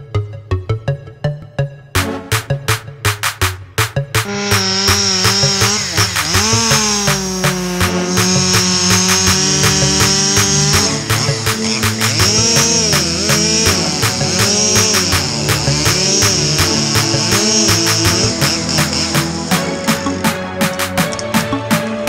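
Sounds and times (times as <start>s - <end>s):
background music with steady beat: 0.0s - 22.0s
chainsaw cutting wood: 3.8s - 21.2s.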